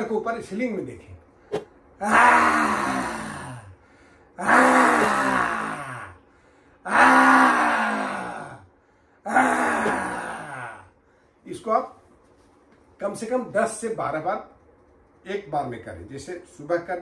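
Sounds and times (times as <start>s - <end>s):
man roaring: 2.0s - 3.8s, 4.4s - 6.2s, 6.8s - 8.7s, 9.3s - 10.9s.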